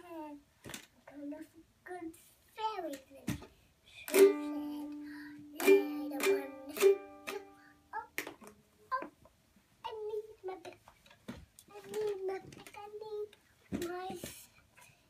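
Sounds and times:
young child's voice: 0:00.0 - 0:00.4, 0:01.0 - 0:09.2, 0:09.8 - 0:10.8, 0:11.7 - 0:14.6
ukulele strumming: 0:04.1 - 0:07.7.

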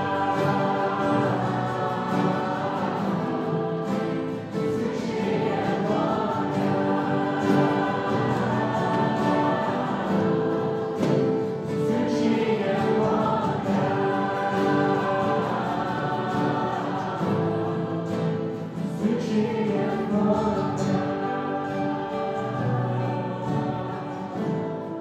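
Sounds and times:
group singing worship song: 0:00.0 - 0:25.0
strummed acoustic guitars: 0:00.0 - 0:25.0.

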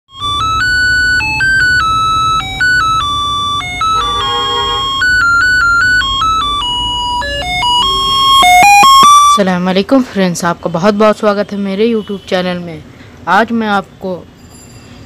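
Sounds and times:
buzzy electronic tune: 0:00.1 - 0:09.4.

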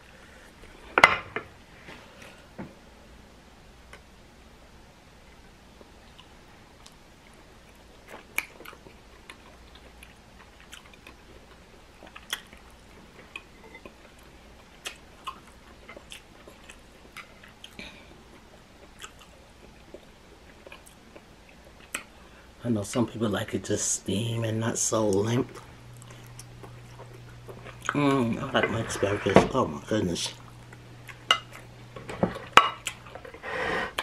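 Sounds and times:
person chewing food: 0:05.3 - 0:22.2, 0:25.5 - 0:28.0, 0:30.3 - 0:34.0.

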